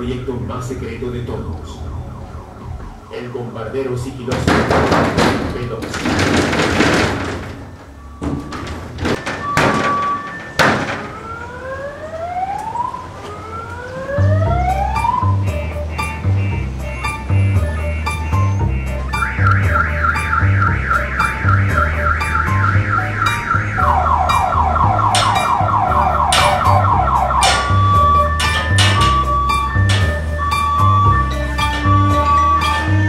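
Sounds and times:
electronic music with pulsing bass: 14.2s - 33.0s.

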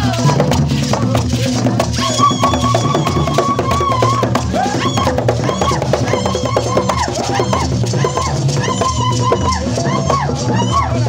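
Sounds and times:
hand drums playing: 0.0s - 11.0s
voices singing into microphone: 0.0s - 11.0s.

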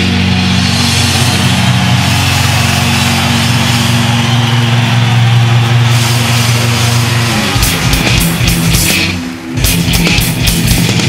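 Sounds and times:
bass guitar: 0.0s - 11.0s
distorted electric guitar riff: 0.0s - 11.0s
drums and cymbals: 0.0s - 11.0s.

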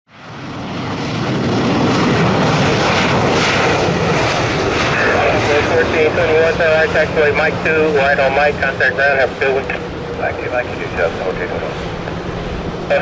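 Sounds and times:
jet engines running: 0.1s - 13.0s
radio speech: 4.9s - 12.2s.

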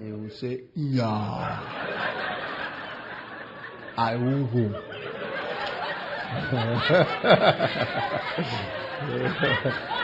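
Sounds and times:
people laughing: 1.0s - 10.0s.

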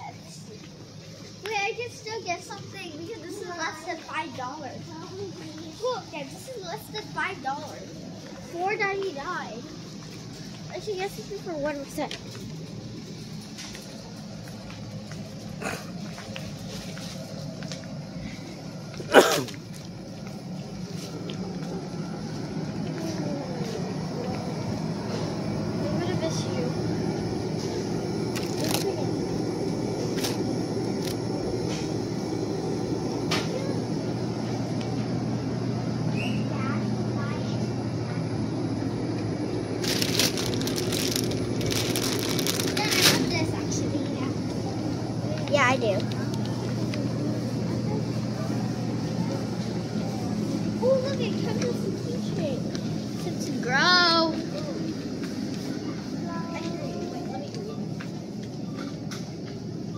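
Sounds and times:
steady background hum: 0.0s - 59.9s
person sneezing: 15.6s - 15.9s, 19.1s - 19.6s
plastic packaging crinkling: 28.3s - 29.0s, 39.6s - 43.6s.

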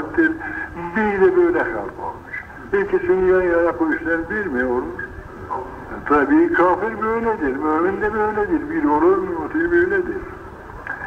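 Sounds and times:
man lecturing: 0.0s - 10.3s.

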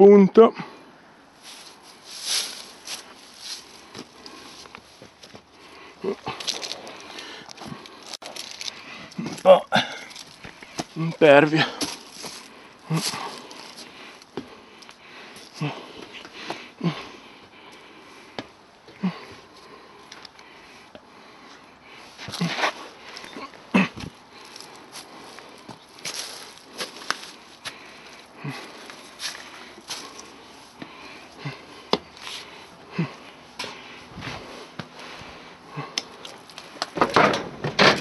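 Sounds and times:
person breathing: 0.5s - 11.0s, 11.6s - 36.8s
footsteps crunching on leaf litter: 1.4s - 5.4s, 6.1s - 13.9s, 24.0s - 31.2s
person murmuring: 6.0s - 6.9s, 9.2s - 10.2s, 10.9s - 11.9s, 12.8s - 13.5s, 15.5s - 16.0s
footsteps on metal-grate steps: 6.2s - 14.5s.

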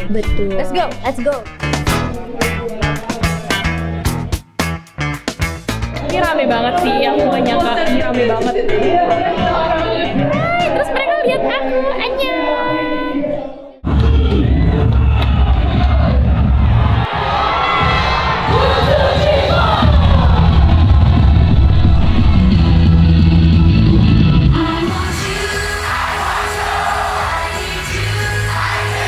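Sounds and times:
pop music with heavy bass: 0.0s - 11.0s, 13.8s - 29.0s
crowd cheering and yelling: 5.8s - 29.0s
singing: 24.5s - 29.0s.

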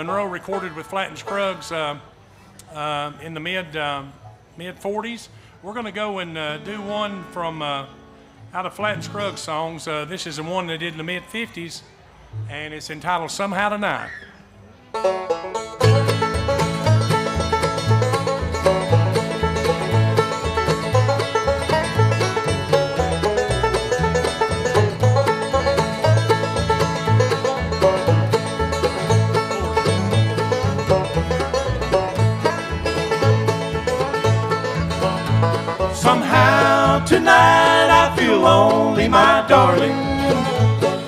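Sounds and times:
banjo: 0.0s - 2.2s, 14.8s - 41.0s
mandolin: 0.0s - 2.7s, 14.7s - 41.0s
guitar: 6.0s - 11.1s, 14.8s - 41.0s
fiddle: 14.6s - 41.0s
upright bass: 15.8s - 41.0s
man singing: 36.0s - 40.8s.

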